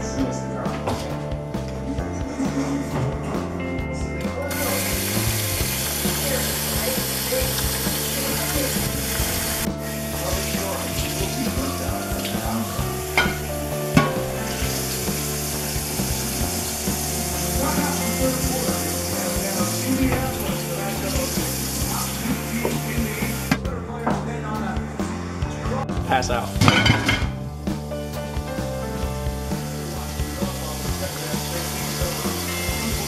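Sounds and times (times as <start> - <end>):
background music with steady beat: 0.0 - 33.0
dishware clinking: 13.1 - 14.7, 26.6 - 27.4
tap running into steel sink: 13.2 - 15.2, 26.6 - 27.3.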